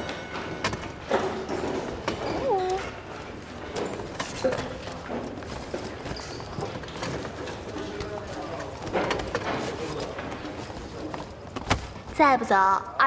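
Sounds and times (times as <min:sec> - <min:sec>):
chairs and desks knocking: 0:00.0 - 0:12.1
indistinct chatter of students: 0:02.4 - 0:12.8.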